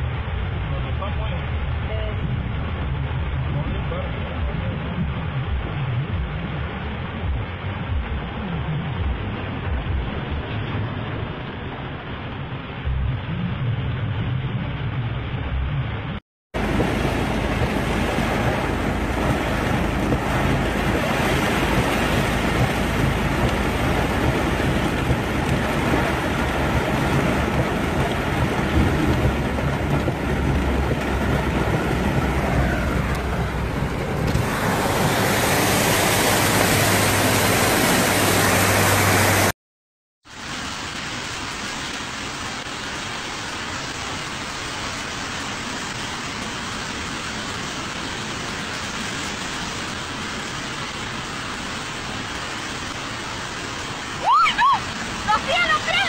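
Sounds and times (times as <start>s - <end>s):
heavy rain drumming on vehicle: 0.0s - 39.5s, 40.2s - 56.0s
vehicle engine running low: 0.0s - 39.5s
running floodwater: 0.0s - 39.6s, 40.2s - 56.0s.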